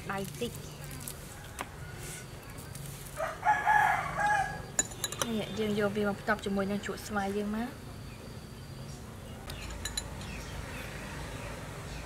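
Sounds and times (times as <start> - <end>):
rooster crowing: 1.3 - 2.3, 3.2 - 4.7.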